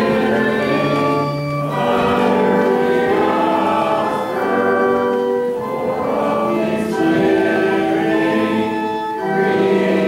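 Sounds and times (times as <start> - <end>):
congregation singing a hymn: 0.0 - 10.0.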